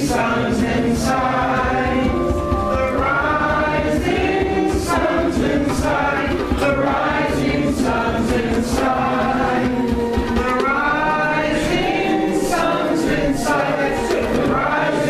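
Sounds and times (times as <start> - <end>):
group of people singing: 0.0 - 15.0.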